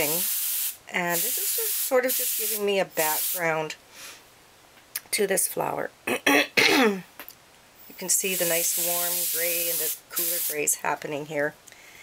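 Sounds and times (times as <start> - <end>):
woman coughing: 6.1 - 7.0
woman clearing her throat: 6.1 - 7.1.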